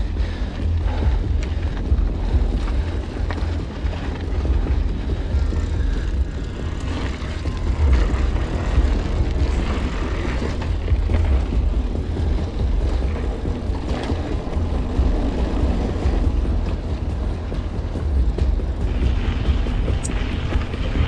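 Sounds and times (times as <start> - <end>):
bike rattling: 0.0 - 21.0
tyres on stony dirt trail: 0.0 - 21.0
wind buffeting microphone: 0.0 - 21.0.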